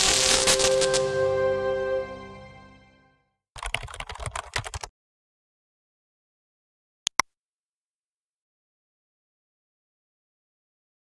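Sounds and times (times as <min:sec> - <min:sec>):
intro music: 0:00.0 - 0:03.2.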